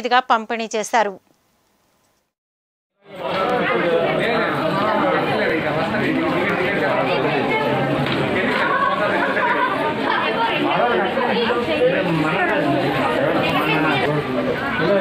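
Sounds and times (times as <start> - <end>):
crowd chatter: 3.0 - 15.0.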